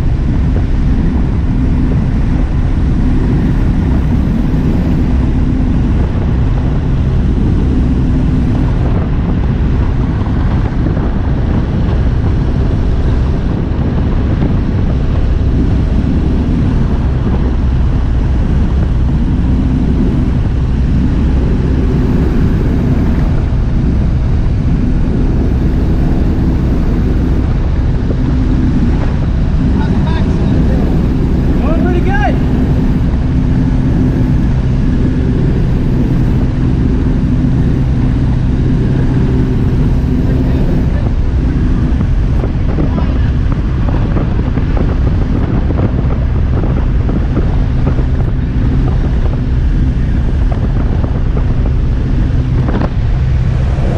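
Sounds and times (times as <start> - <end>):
aircraft engine and propeller droning: 0.0 - 53.9
wind noise: 0.0 - 53.9.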